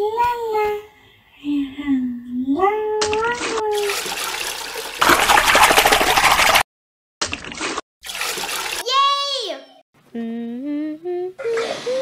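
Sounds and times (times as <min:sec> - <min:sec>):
water running: 0:03.1 - 0:06.6, 0:07.3 - 0:09.0
cartoon voice saying yay: 0:08.8 - 0:09.8.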